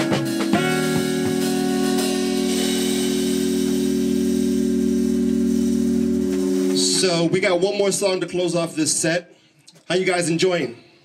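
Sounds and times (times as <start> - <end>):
jazz band holding a chord: 0.0 - 7.7
cymbal wash: 0.1 - 7.3.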